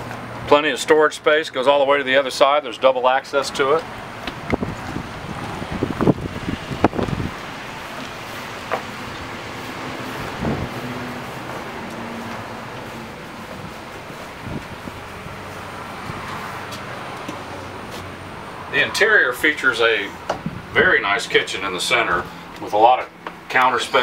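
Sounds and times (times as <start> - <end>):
wind on microphone: 4.3 - 8.1, 9.7 - 11.7, 13.2 - 16.7, 20.3 - 21.0.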